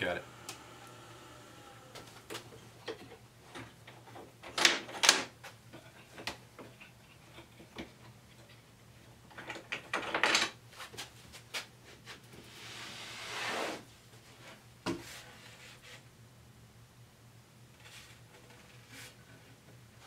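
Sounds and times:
board scraping across wood: 0:12.5 - 0:13.9.

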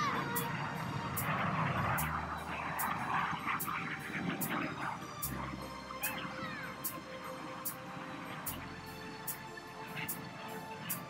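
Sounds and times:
background music with steady beat: 0:00.0 - 0:11.0
jets flying past low: 0:00.0 - 0:11.0.

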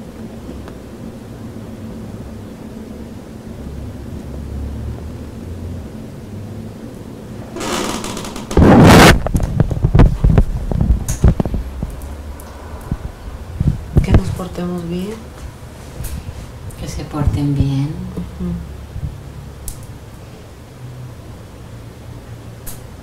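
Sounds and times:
low room hum: 0:00.0 - 0:23.0
knocks and rubs on microphone: 0:07.4 - 0:11.9
rustling near microphone: 0:07.4 - 0:17.8
loud thump on microphone: 0:08.0 - 0:10.5.

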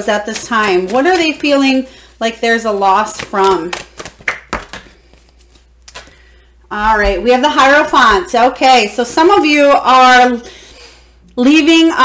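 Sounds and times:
cards tapping and clicking: 0:00.2 - 0:01.5, 0:03.1 - 0:06.2.

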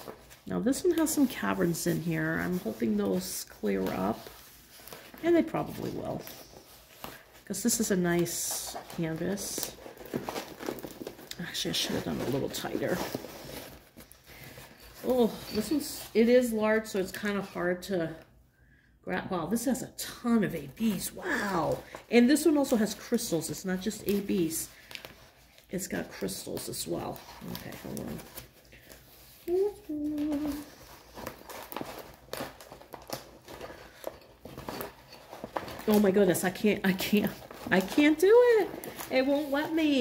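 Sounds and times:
stiff canvas crinkling: 0:08.6 - 0:16.0, 0:27.0 - 0:40.0.

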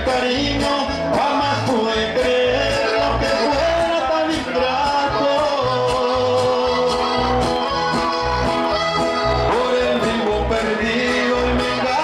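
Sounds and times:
accordion: 0:00.0 - 0:12.0
bass line: 0:00.0 - 0:12.0
guitars: 0:00.0 - 0:12.0.

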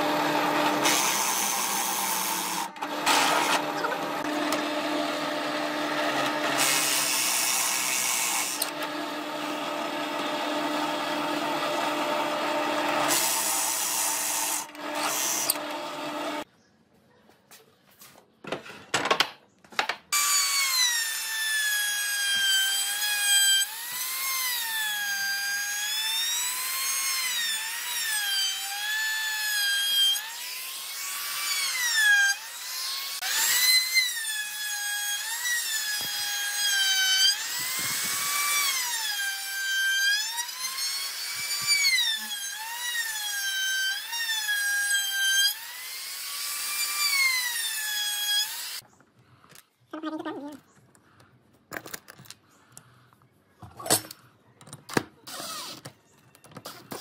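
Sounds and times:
trim router motor whine: 0:00.0 - 0:16.4.

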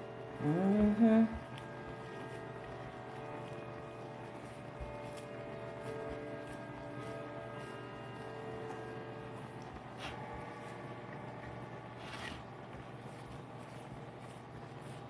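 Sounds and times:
fingertips rubbing crust mixture: 0:00.2 - 0:15.0.

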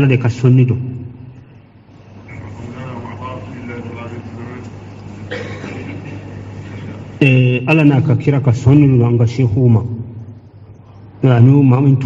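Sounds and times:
steady low hum: 0:00.0 - 0:12.0
quiet speech: 0:02.2 - 0:06.0.

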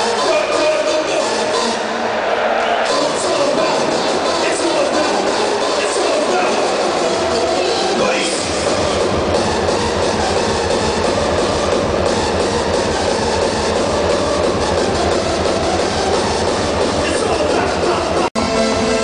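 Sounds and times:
crowd voices: 0:00.0 - 0:19.0
hardstyle dance music: 0:00.0 - 0:19.0.

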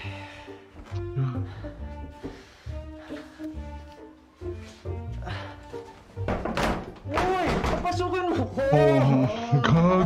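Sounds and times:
background music: 0:00.0 - 0:10.0
banging on a door: 0:06.2 - 0:08.0.

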